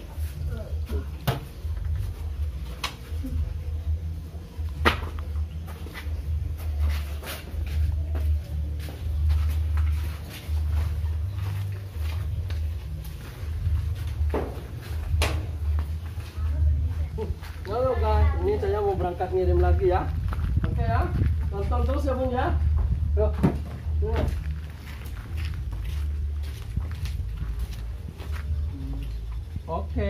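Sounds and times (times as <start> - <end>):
low rumbling on microphone: 7.8 - 30.0.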